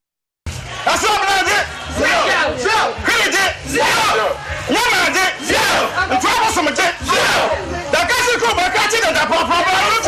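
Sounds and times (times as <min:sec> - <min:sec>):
men shouting calls: 0:00.9 - 0:10.0.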